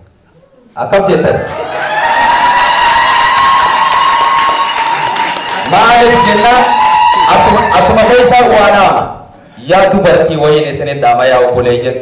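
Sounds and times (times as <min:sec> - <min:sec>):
audience applauding and cheering: 0:01.5 - 0:08.3.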